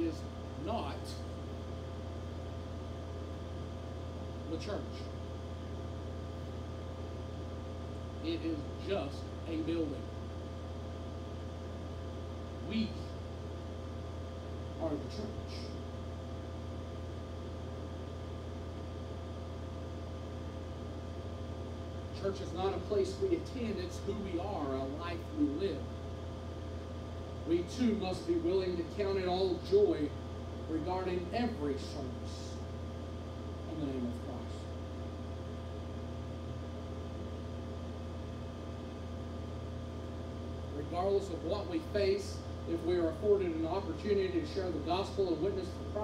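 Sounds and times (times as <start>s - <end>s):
faint steady whine tones: 0.0s - 46.0s
low room hum: 0.0s - 46.0s.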